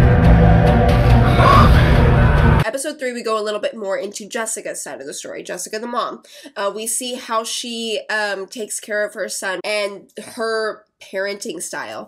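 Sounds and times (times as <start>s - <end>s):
tense drama score: 0.0s - 2.6s
person gasping: 1.3s - 2.0s
woman speaking: 2.6s - 12.0s.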